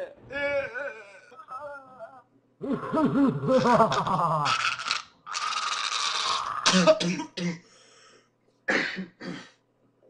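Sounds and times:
young man laughing: 0:01.6 - 0:04.6.

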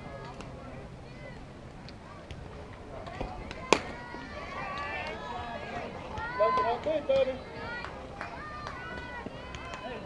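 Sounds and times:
spectators calling and chatting: 0:00.0 - 0:10.0
softball bat crack: 0:03.0 - 0:05.2.

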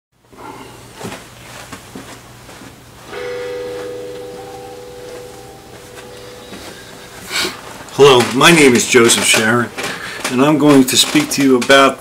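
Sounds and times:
low steady hum: 0:00.4 - 0:10.6
ringing tone: 0:03.1 - 0:09.8.

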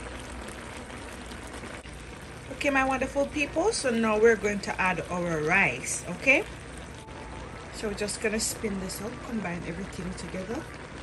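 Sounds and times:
stir-fry sizzling in a wok: 0:00.0 - 0:11.0.

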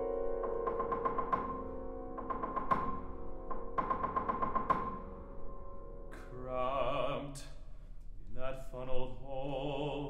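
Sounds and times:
piano playing repeated notes: 0:00.0 - 0:06.5
bass singer with vibrato: 0:06.2 - 0:07.6.

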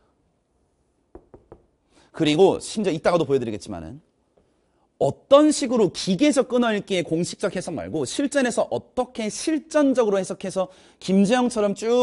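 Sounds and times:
marker tapping on board: 0:01.1 - 0:01.8.

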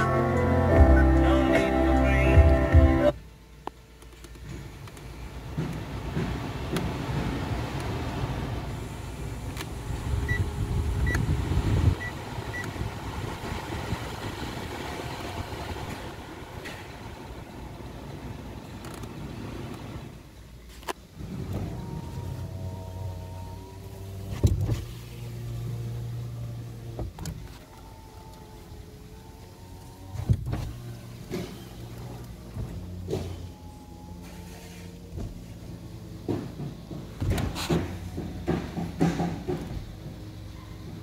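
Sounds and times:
car cabin fan blowing: 0:00.0 - 0:41.0
electric window motor running: 0:21.2 - 0:36.3.

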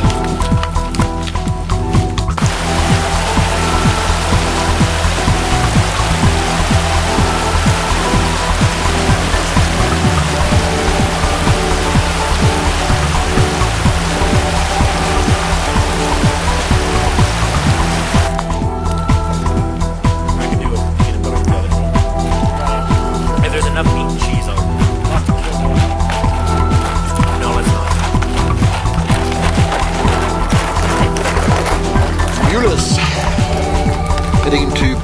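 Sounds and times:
background music with steady beat: 0:00.0 - 0:35.0
stream rushing over rocks: 0:02.3 - 0:19.6, 0:25.3 - 0:35.0.

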